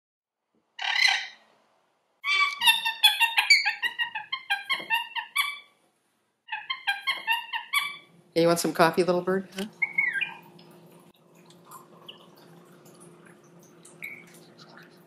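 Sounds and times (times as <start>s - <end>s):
lorikeet screeching and chattering: 0.8s - 1.4s, 2.2s - 5.7s, 6.5s - 8.1s, 9.8s - 10.4s.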